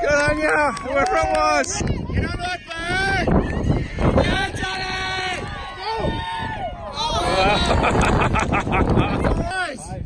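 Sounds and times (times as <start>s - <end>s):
spectators yelling: 0.0s - 8.0s.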